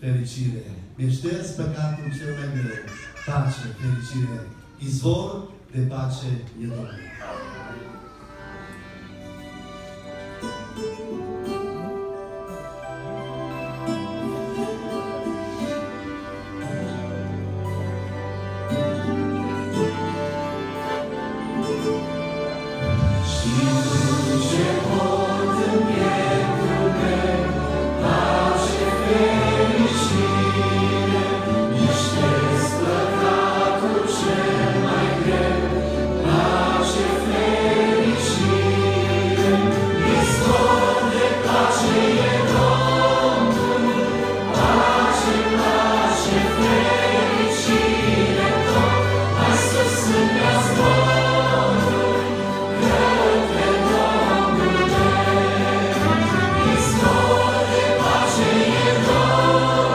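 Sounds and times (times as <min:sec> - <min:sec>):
accordion: 0:09.0 - 0:59.9
trumpet: 0:15.6 - 0:59.9
vocal group singing in harmony: 0:23.1 - 0:59.9.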